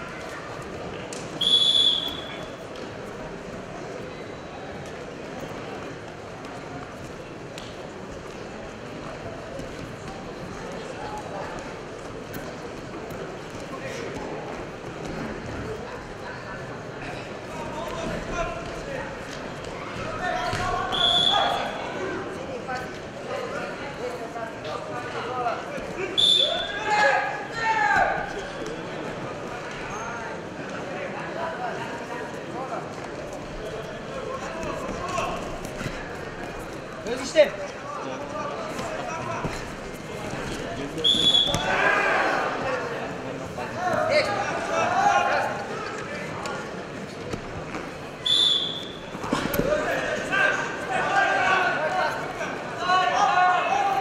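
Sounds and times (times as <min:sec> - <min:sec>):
referee's whistle blast: 0:01.4 - 0:02.5, 0:20.9 - 0:21.7, 0:26.2 - 0:26.8, 0:41.0 - 0:41.7, 0:48.2 - 0:49.0
people shouting: 0:41.3 - 0:42.6.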